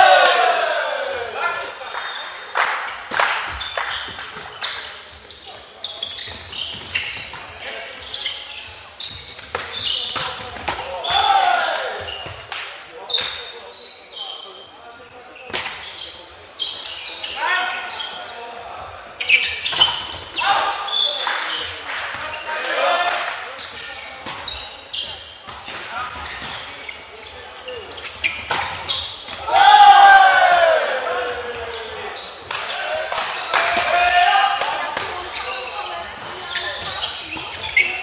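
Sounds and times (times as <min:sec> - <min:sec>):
players shouting: 0:00.0 - 0:01.8, 0:10.8 - 0:12.2, 0:29.4 - 0:35.0.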